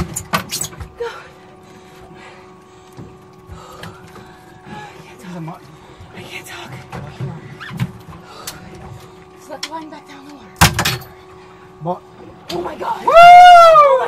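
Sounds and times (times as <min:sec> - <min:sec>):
steady low hum: 0:00.0 - 0:14.0.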